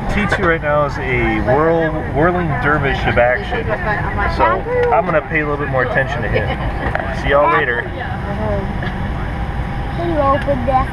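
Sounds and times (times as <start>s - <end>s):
airliner engine drone: 0.0s - 10.9s.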